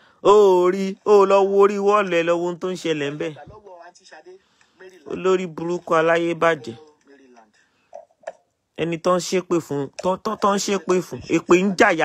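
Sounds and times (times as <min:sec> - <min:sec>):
person speaking: 0:00.1 - 0:12.0.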